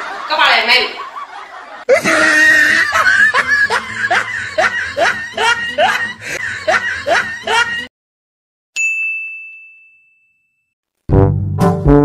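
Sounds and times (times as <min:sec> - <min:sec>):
high-pitched laughter: 0:00.0 - 0:07.9
bell ding: 0:08.8 - 0:10.7.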